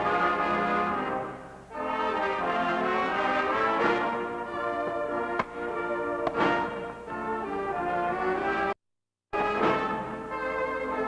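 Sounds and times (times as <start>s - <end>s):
orchestra playing with brass: 0.0s - 8.7s, 9.4s - 11.0s.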